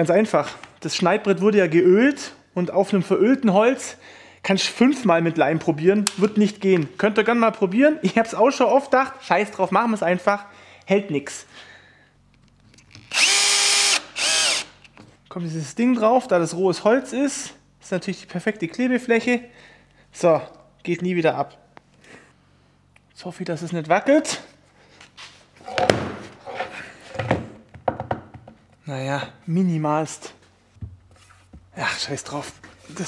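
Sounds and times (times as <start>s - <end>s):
cordless drill driving screw: 13.0s - 14.8s
wooden board knocking on workbench: 25.7s - 26.3s, 27.2s - 28.6s.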